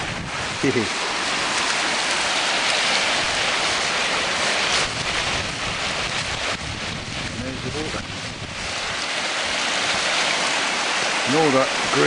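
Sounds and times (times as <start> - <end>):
water rushing in a brook: 0.0 - 12.0.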